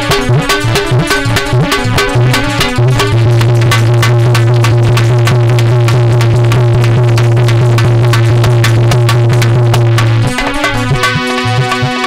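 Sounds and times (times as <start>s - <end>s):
fast percussion beat: 0.0s - 12.0s.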